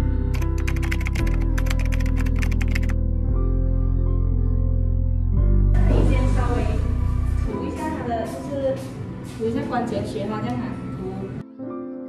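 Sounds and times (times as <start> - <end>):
background music: 0.0 - 12.0
rapid keyboard typing clicks: 0.3 - 3.0.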